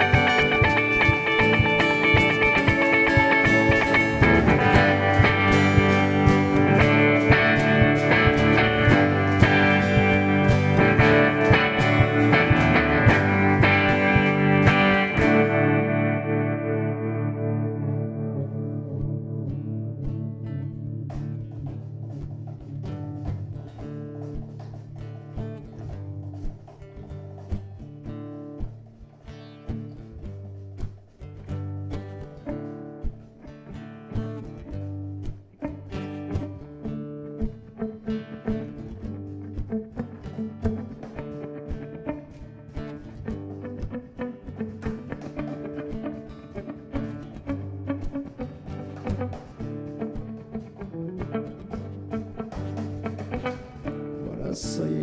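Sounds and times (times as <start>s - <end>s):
steady low bass line: 0.0s - 20.7s
acoustic guitar: 0.0s - 55.0s
electric guitar picking notes: 0.0s - 55.0s.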